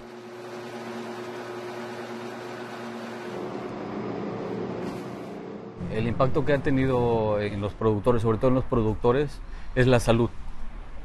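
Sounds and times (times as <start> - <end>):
electric grinder motor humming: 0.0 - 3.8.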